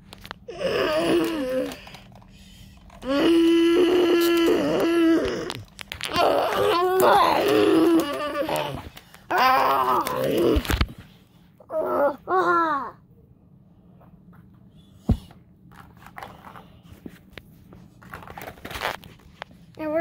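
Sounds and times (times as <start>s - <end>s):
person making roaring noises: 0.5s - 1.9s, 3.0s - 10.8s, 11.6s - 13.0s.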